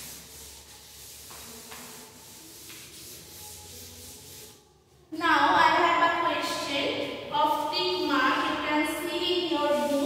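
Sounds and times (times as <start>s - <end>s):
duster rubbing chalkboard: 0.0s - 4.6s, 9.2s - 10.0s.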